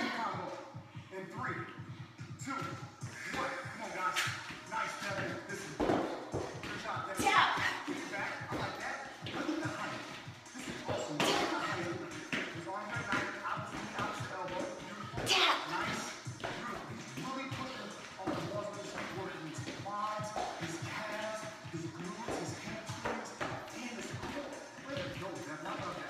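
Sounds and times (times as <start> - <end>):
background music: 0.0 - 26.0
feet landing on hard floor: 2.5 - 26.0.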